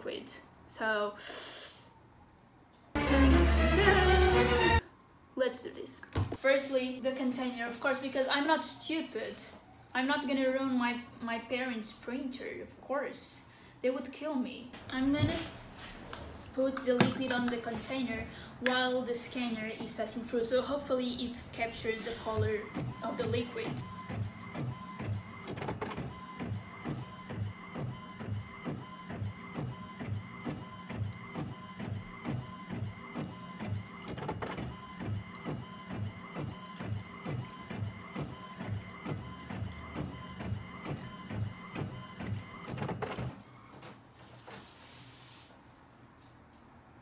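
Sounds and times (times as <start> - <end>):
scanner carriage motor pulsing: 21.0 - 43.4.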